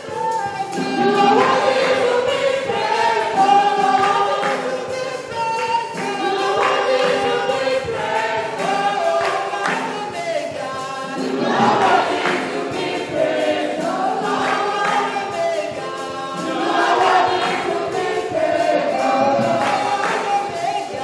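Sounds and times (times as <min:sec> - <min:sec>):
woman singing into microphone: 0:00.0 - 0:12.0, 0:18.3 - 0:21.0
voices singing along: 0:00.0 - 0:21.0.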